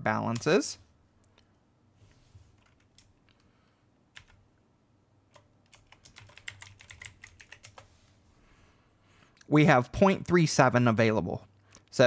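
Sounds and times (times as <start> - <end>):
computer keyboard typing: 2.6 - 3.2, 4.1 - 4.4, 5.3 - 7.9.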